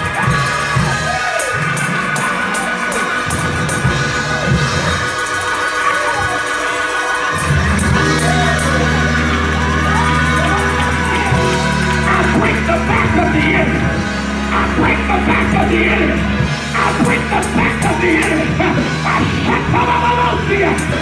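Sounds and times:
crowd cheering and shouting: 0:00.0 - 0:21.0
live worship music: 0:00.0 - 0:21.0
low held bass chord: 0:00.0 - 0:21.0.

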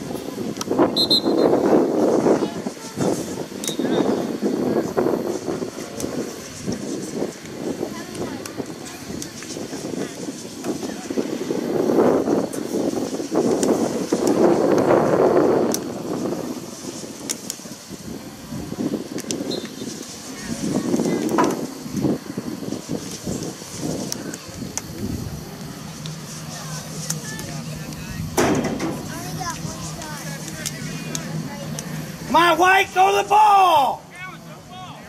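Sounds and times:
indistinct voices: 0:24.0 - 0:35.0.

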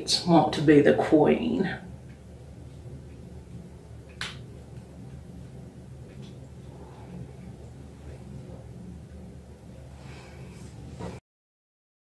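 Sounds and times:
low steady hum: 0:00.0 - 0:11.2.

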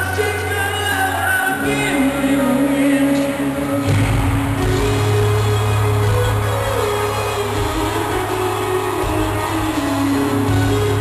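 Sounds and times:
live rock band instrumental: 0:00.0 - 0:11.0.

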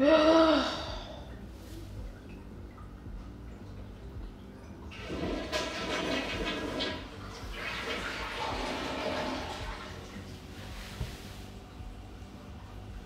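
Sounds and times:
toilet flushing: 0:04.8 - 0:13.0.

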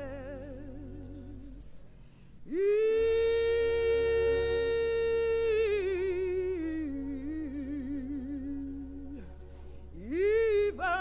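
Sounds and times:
faint low hum: 0:00.0 - 0:11.0
person singing gospel: 0:00.0 - 0:11.0.

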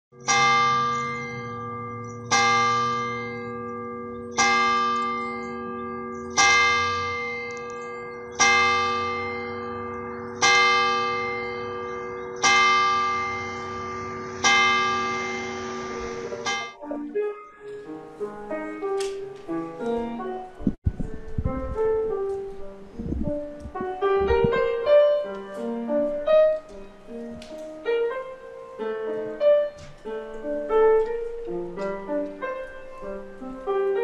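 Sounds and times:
church bell tolling: 0:00.2 - 0:20.6.

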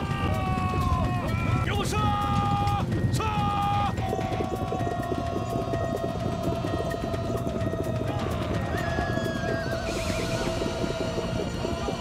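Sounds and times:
background music long note: 0:00.0 - 0:12.0
galloping horses' hooves: 0:00.0 - 0:12.0.

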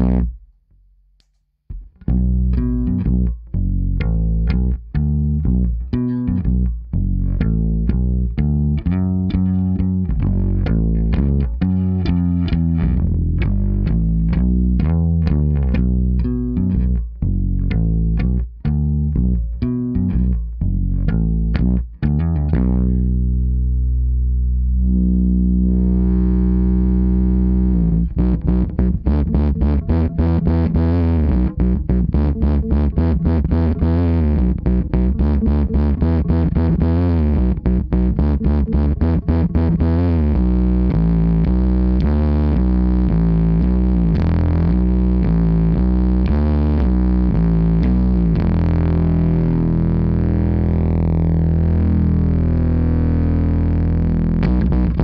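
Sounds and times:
distorted electric bass notes: 0:00.0 - 0:00.8, 0:01.7 - 0:55.0.

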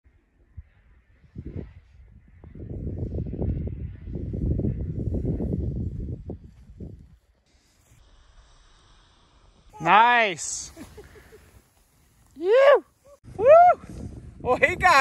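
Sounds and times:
wind buffeting microphone: 0:00.5 - 0:07.3, 0:13.0 - 0:15.0.

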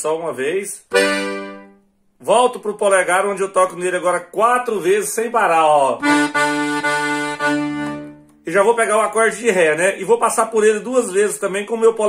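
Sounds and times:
accordion short notes: 0:00.9 - 0:01.9, 0:06.0 - 0:08.5.

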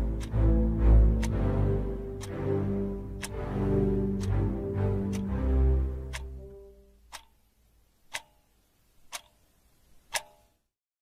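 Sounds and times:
music: 0:00.0 - 0:07.0
clock ticking: 0:00.0 - 0:10.7.

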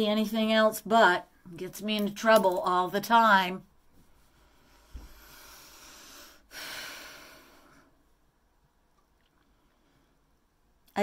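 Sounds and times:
woman breathing close to microphone: 0:04.1 - 0:08.2.

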